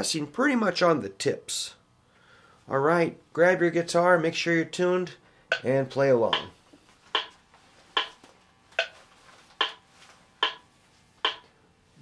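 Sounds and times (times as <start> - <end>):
metronome clicking: 5.5 - 5.7, 6.3 - 6.5, 7.1 - 7.4, 8.0 - 8.2, 8.8 - 9.0, 9.6 - 9.8, 10.4 - 10.6, 11.2 - 11.5.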